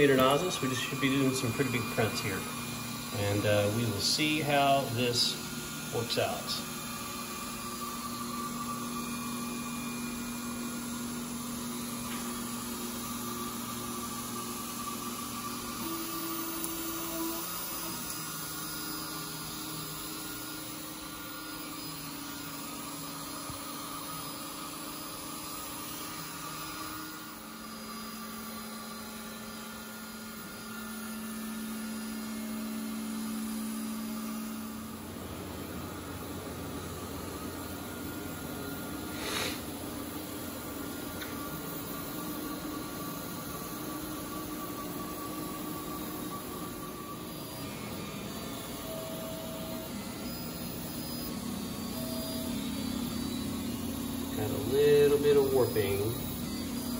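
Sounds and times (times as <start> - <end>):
stepper motors whining: 0.0 - 56.9.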